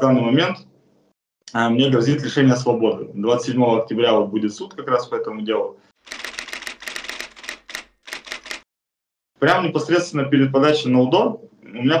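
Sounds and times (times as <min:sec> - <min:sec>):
typewriter keys clacking: 0:06.1 - 0:08.6.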